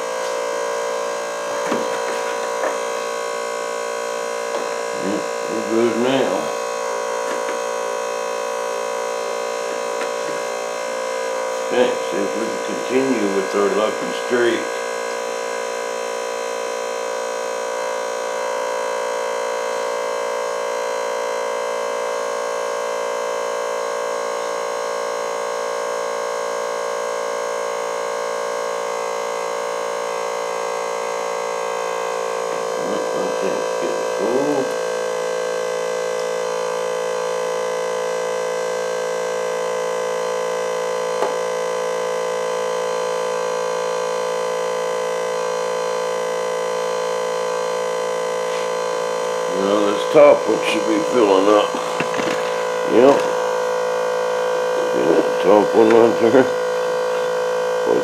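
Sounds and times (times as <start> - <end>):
electric fuel pump whining: 0.0 - 58.0.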